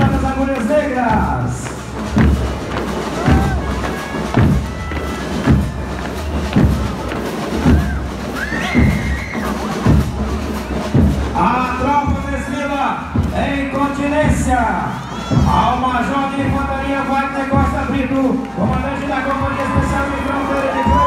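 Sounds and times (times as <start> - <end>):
bass drum marching cadence: 0.0 - 21.0
crowd noise: 0.0 - 21.0.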